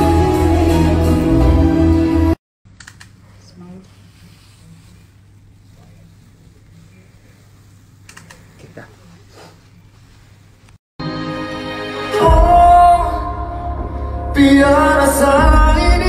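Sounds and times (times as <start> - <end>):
music: 0.0 - 2.4, 11.0 - 16.0.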